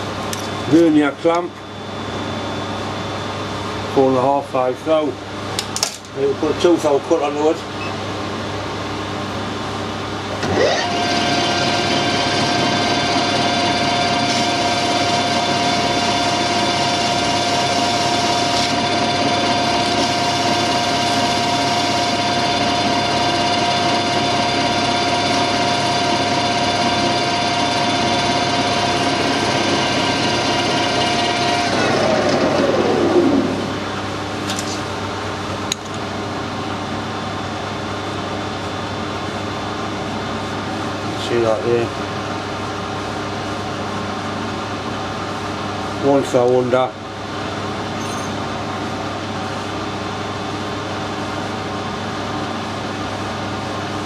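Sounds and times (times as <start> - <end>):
metal lathe whining: 10.4 - 33.9.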